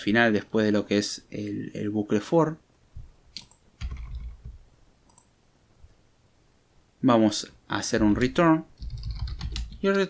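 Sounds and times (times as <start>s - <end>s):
keyboard and mouse clicks: 3.3s - 5.3s, 8.8s - 10.0s.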